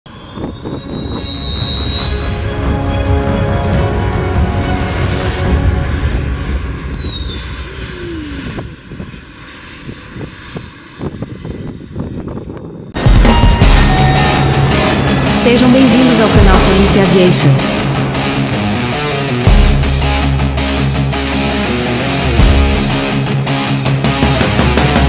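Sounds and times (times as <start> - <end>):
jet engines high-pitched whine: 0.0 - 25.0.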